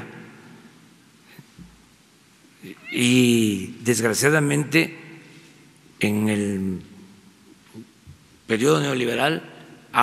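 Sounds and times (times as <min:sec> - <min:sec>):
man speaking: 0:02.6 - 0:05.0, 0:06.0 - 0:06.9, 0:08.5 - 0:09.4.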